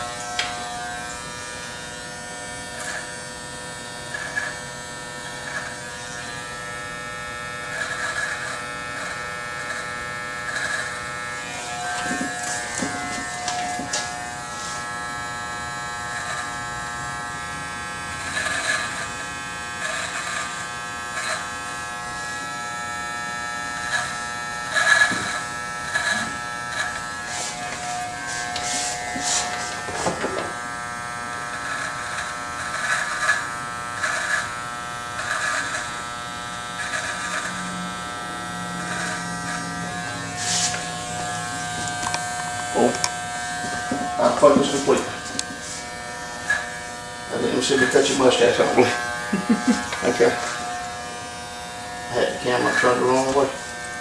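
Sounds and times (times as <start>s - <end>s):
hair clippers buzzing: 0.0s - 54.0s.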